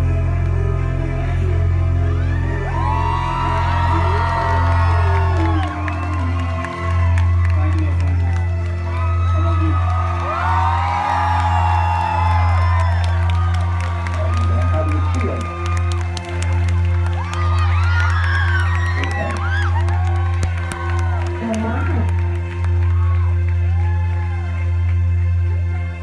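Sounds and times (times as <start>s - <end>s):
heavy synth bass: 0.0s - 5.4s
live electronic music: 0.0s - 26.0s
audience whooping and cheering: 2.1s - 24.8s.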